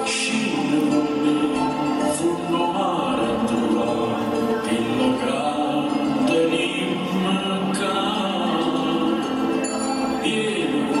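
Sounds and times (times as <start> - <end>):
music with singing: 0.0 - 11.0.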